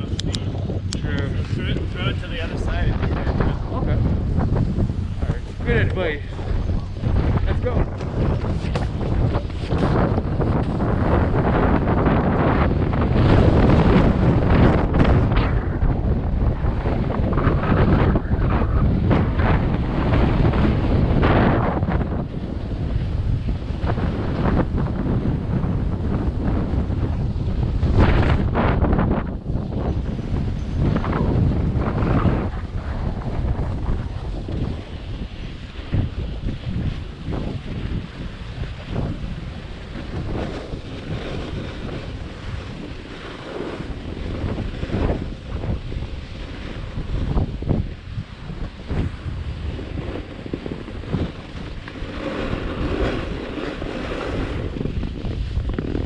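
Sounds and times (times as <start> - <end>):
wind buffeting microphone: 0.0 - 56.0
snowboard scraping packed snow: 1.3 - 56.0.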